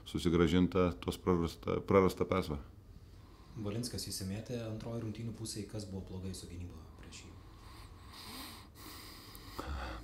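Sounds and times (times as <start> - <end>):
man breathing through nose: 7.5 - 10.0.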